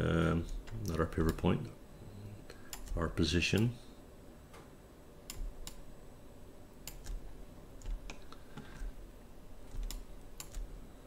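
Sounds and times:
computer keys clicking: 2.7s - 3.7s, 5.3s - 5.8s, 6.8s - 8.9s, 9.7s - 10.8s.

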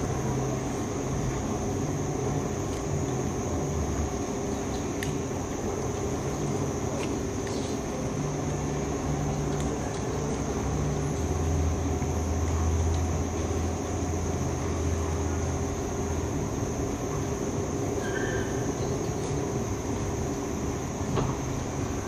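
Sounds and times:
room hum and rumble: 0.0s - 22.0s.

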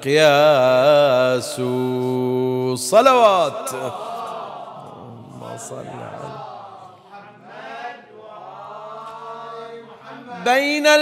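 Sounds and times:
amplified reciter's voice: 0.0s - 11.0s
men chanting in unison: 0.0s - 11.0s.

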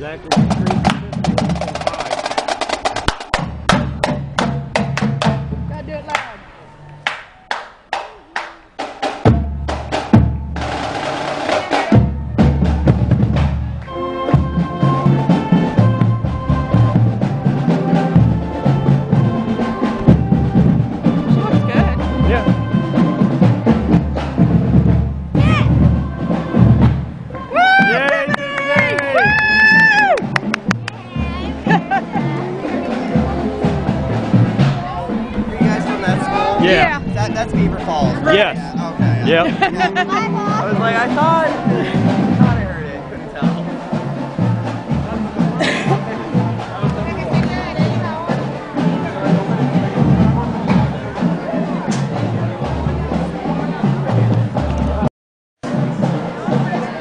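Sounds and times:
marching band drums: 0.3s - 6.4s, 7.9s - 57.0s
horns holding notes: 3.1s - 55.0s.

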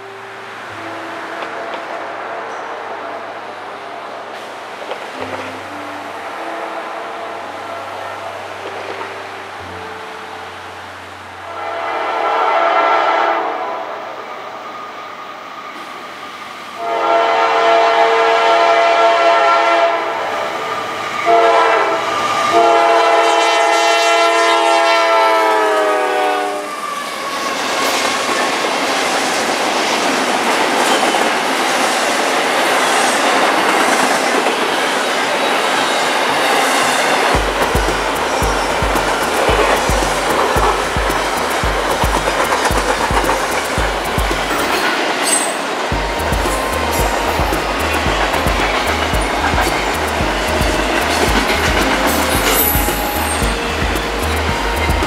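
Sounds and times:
locomotive air horn blasts: 11.4s - 14.0s, 16.8s - 26.8s
train wheels rolling: 26.1s - 55.0s.

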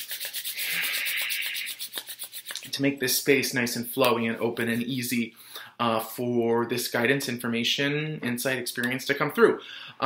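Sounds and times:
palms rubbing together: 0.0s - 2.9s.

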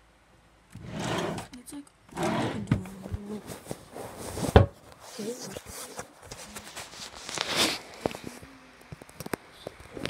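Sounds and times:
fabric rustling: 2.3s - 8.4s.

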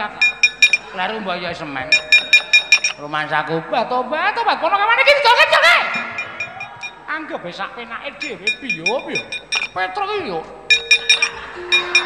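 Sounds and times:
metal plates struck clinking: 8.2s - 9.8s, 10.7s - 12.0s.

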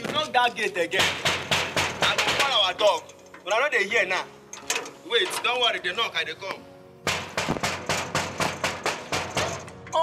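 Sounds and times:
rapid banging on a gate: 0.9s - 3.8s, 7.0s - 10.0s.

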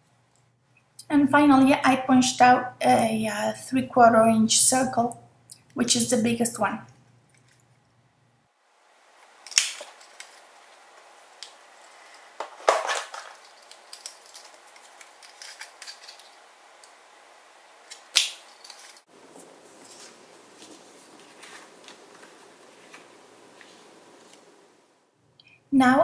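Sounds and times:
paper rustling: 9.3s - 17.0s, 17.8s - 24.6s.

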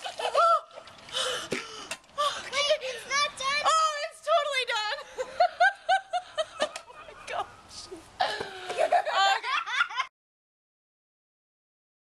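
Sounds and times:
woman laughing: 0.0s - 0.7s, 4.9s - 7.5s, 8.2s - 10.1s.

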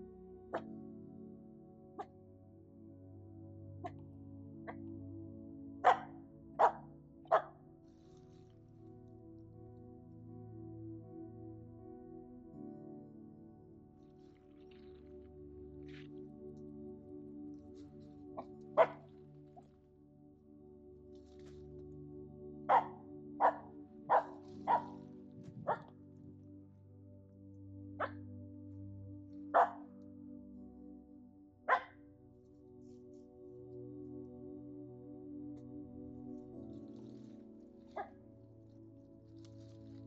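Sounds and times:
soft background music: 0.0s - 40.0s
dog barking: 5.8s - 7.6s, 18.8s - 19.1s, 22.7s - 25.0s, 25.6s - 25.9s, 28.0s - 28.2s, 29.5s - 29.9s, 31.7s - 32.0s, 38.0s - 38.2s.

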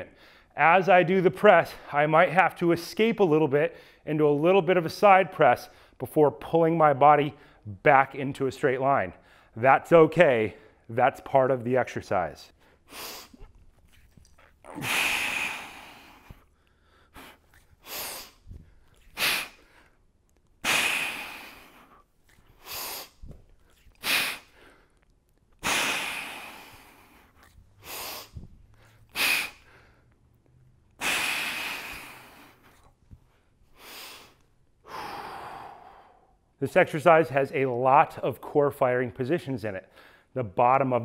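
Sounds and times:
man breathing hard: 0.1s - 0.6s, 14.4s - 20.0s, 20.6s - 23.3s, 25.6s - 30.2s, 31.0s - 36.4s.

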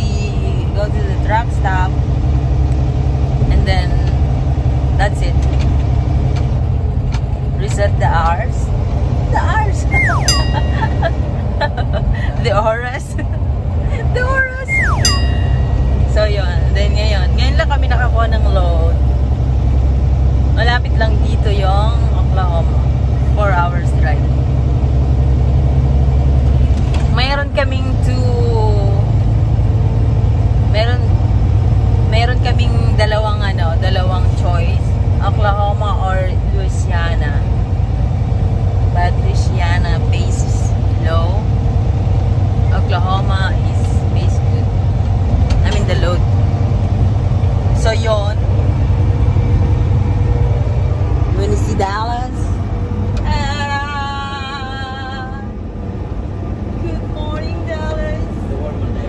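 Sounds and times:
woman talking: 0.0s - 2.0s, 3.4s - 4.2s, 5.0s - 5.5s, 7.6s - 8.7s, 9.3s - 19.0s, 20.6s - 24.4s, 27.1s - 29.2s, 30.7s - 31.2s, 32.1s - 37.5s, 38.9s - 41.5s, 42.7s - 44.7s, 45.6s - 46.3s, 47.7s - 48.5s, 51.3s - 52.6s, 53.2s - 55.6s, 56.8s - 59.0s
truck engine and road rumble: 0.0s - 59.0s.

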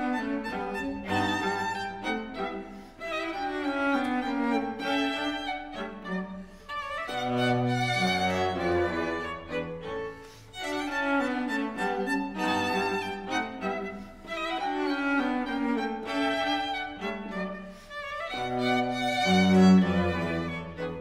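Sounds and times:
string quartet playing: 0.0s - 21.0s.

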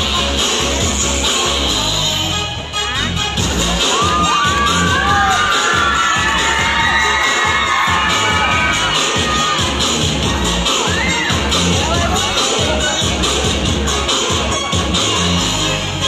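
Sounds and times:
dance music with steady beat: 0.0s - 16.0s
crowd of children cheering: 3.8s - 10.0s, 10.7s - 11.6s.

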